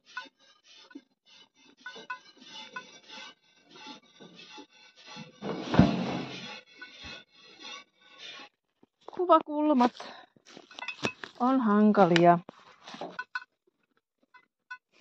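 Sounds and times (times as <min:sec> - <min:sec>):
loud thump: 0:05.5 - 0:06.3.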